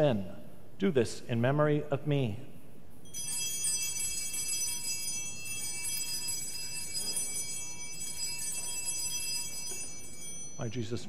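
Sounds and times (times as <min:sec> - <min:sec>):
bright metallic bell ringing: 0:03.0 - 0:11.0.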